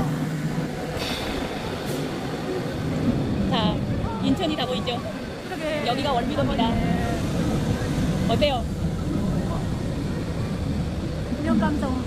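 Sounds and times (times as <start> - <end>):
thrill ride rumbling: 0.0 - 12.0
faint voices: 2.3 - 12.0.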